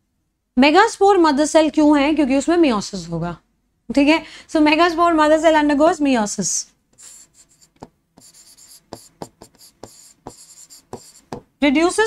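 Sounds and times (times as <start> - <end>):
person speaking: 6.5 - 12.0
scratchy writing on a board: 6.9 - 11.5.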